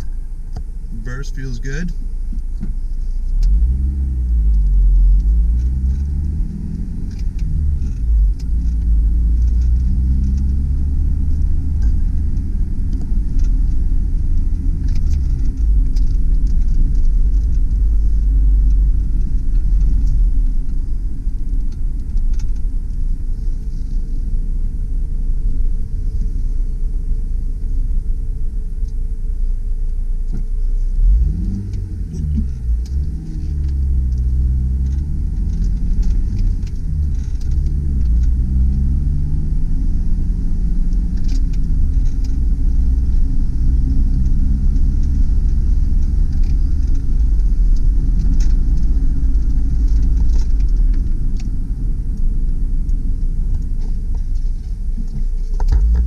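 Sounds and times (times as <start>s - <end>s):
car engine accelerating: 0.0s - 56.0s
low road rumble: 0.0s - 56.0s.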